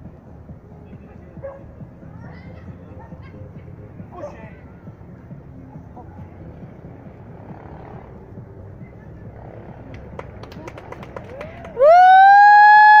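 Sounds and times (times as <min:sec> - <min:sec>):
siren-like wail: 0:11.8 - 0:13.0.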